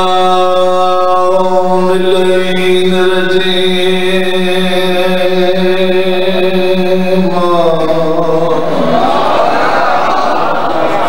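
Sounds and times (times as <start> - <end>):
man chanting through microphone: 0.0 - 9.6.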